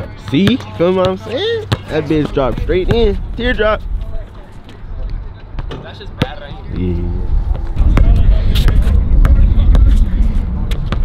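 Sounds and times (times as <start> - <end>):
faint voices: 0.0 - 10.7
wind rumbling on microphone: 6.6 - 11.0.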